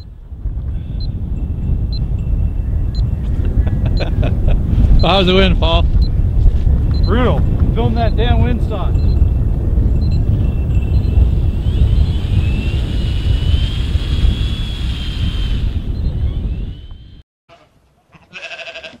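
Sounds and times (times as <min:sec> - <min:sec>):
high wind whistle: 0:00.0 - 0:17.2
wind buffeting microphone: 0:00.0 - 0:17.2
sheep bleat: 0:17.5 - 0:19.0.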